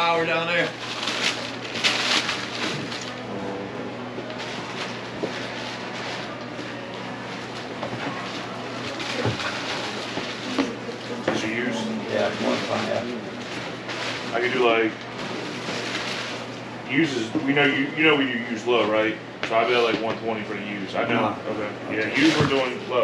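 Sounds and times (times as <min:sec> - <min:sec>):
steady low hum: 0:00.0 - 0:23.0
tissue paper and cardboard rustling: 0:00.5 - 0:03.2, 0:04.4 - 0:06.4, 0:07.1 - 0:11.6, 0:12.2 - 0:16.5.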